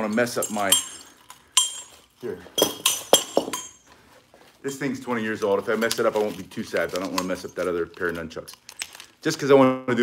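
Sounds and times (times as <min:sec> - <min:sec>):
metal chain clinking: 0:00.0 - 0:04.0.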